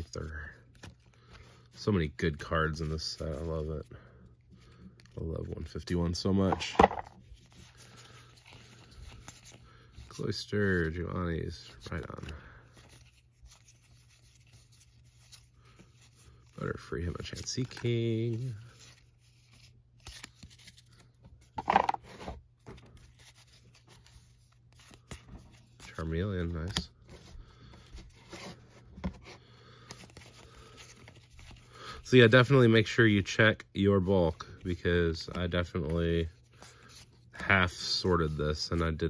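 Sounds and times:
trading cards flipped by hand: 6.4 - 9.6, 17.1 - 31.6
card scraping: 21.4 - 24.2.

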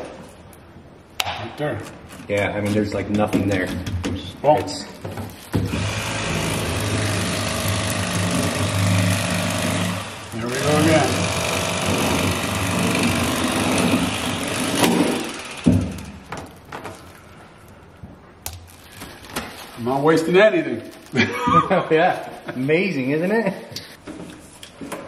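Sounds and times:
electric fillet knife buzzing: 5.7 - 16.1.

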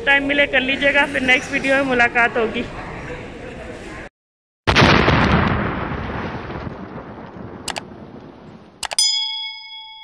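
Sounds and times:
notification bell ding: 8.8 - 10.0.

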